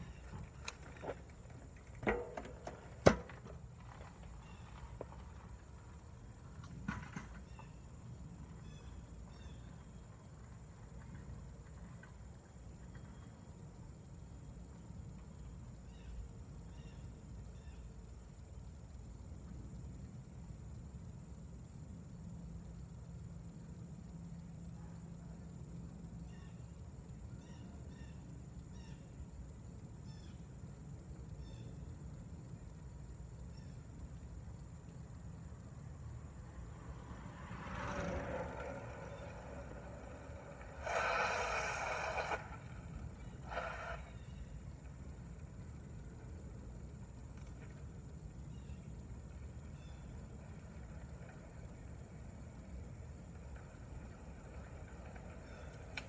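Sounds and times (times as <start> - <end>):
street low rumble: 0.0 - 56.0
short hissing bursts: 43.3 - 44.4.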